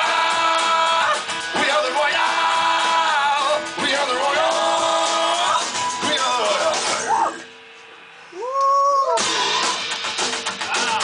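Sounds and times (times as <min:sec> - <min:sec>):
drums crashing: 0:00.0 - 0:07.3, 0:09.1 - 0:11.0.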